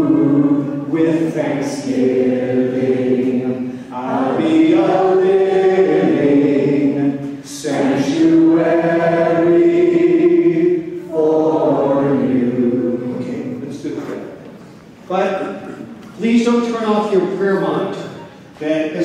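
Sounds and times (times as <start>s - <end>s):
congregation singing: 0.0s - 14.4s.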